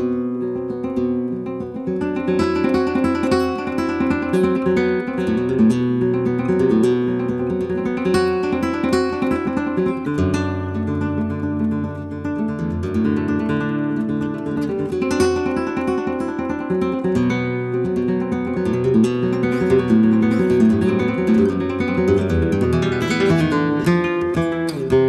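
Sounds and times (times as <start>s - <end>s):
flamenco guitar playing: 0.0s - 25.0s.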